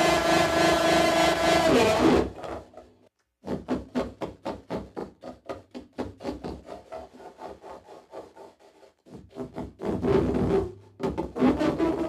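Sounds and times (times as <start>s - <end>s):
rubbing on amplified glass: 3.4s - 12.0s.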